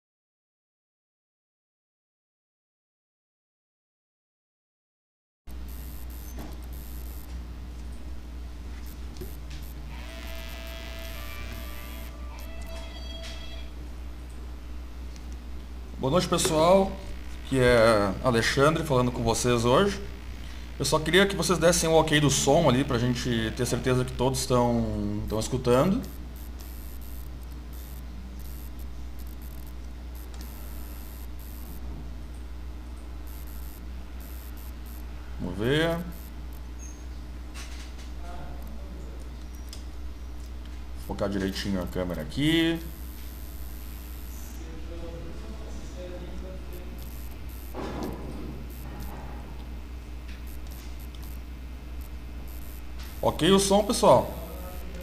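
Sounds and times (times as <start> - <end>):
microphone hiss: 5.5 - 7.5, 8.6 - 31.9, 32.5 - 36.7, 40.9 - 55.0
low electrical hum: 5.5 - 55.0.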